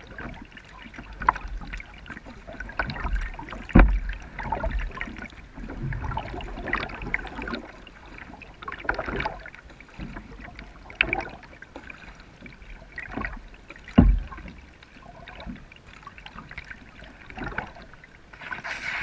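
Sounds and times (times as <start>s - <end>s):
paddle splashing and dripping: 0.0s - 19.0s.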